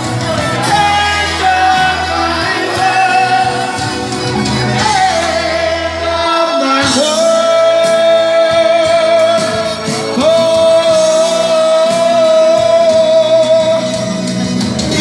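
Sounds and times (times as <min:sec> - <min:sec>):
backing music: 0:00.0 - 0:15.0
man singing into a microphone: 0:00.0 - 0:15.0.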